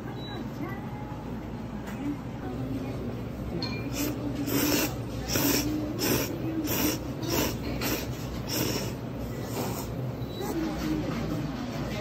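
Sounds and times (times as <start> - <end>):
person slurping noodles: 4.0 - 10.0.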